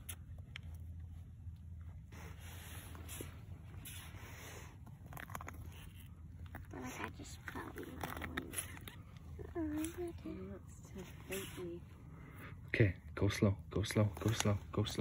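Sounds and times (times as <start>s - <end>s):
faint rustles and clicks: 0.0s - 12.7s, 13.8s - 15.0s.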